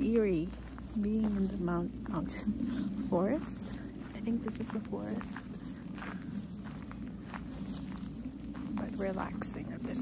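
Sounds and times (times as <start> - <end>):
footsteps on forest path: 0.0 - 10.0
low background hum: 0.0 - 10.0.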